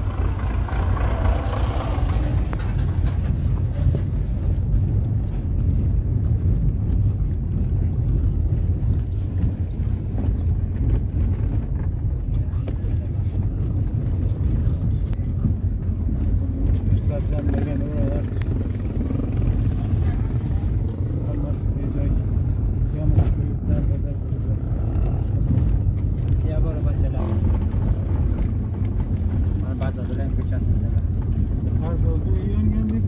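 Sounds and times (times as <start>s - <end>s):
car engine and tyre rumble: 0.0s - 33.0s.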